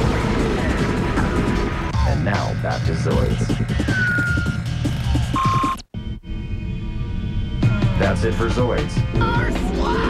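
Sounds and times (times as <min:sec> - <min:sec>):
falling electronic tone: 0:02.8 - 0:05.8.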